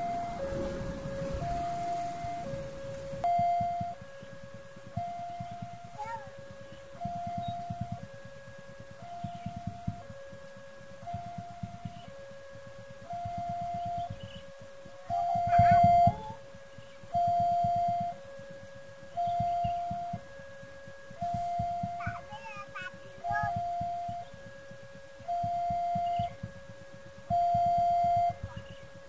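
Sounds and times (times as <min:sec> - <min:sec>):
level crossing two-tone alarm: 0:00.0 - 0:29.0.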